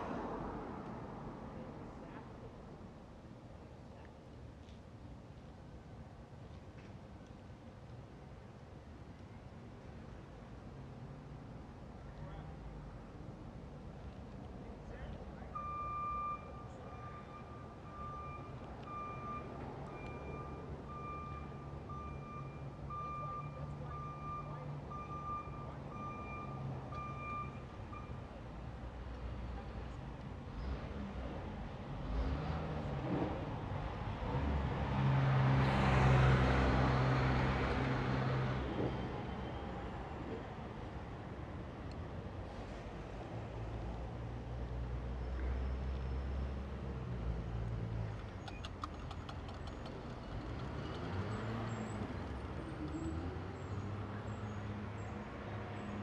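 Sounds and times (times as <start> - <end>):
reversing alarm beeping: 15.6 - 28.2
vehicle passing by: 30.5 - 40.3, 49.2 - 56.0.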